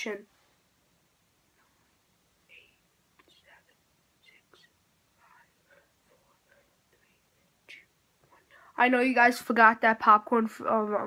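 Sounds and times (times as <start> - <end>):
boy whispering: 2.4 - 9.2.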